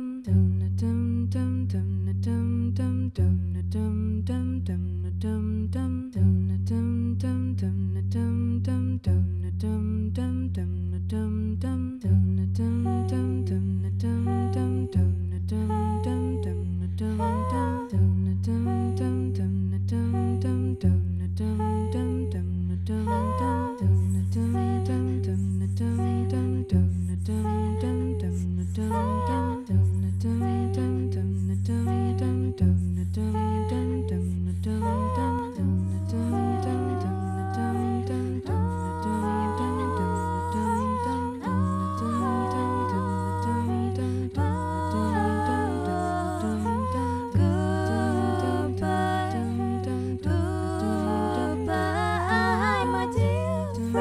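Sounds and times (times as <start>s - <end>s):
female vocal quartet singing: 0.0s - 54.0s.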